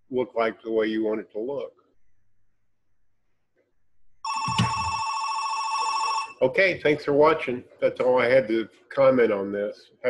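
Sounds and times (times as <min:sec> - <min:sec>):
electronic telephone ringing: 0:04.2 - 0:06.4.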